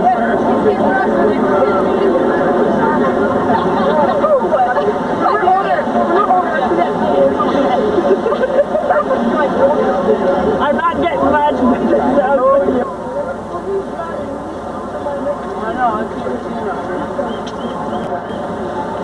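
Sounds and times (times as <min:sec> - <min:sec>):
crowd of young people chattering: 0:00.0 - 0:19.0.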